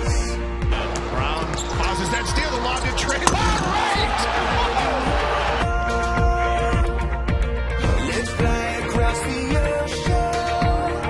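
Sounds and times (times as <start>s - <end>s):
background music: 0.0s - 11.0s
voices: 0.7s - 6.2s.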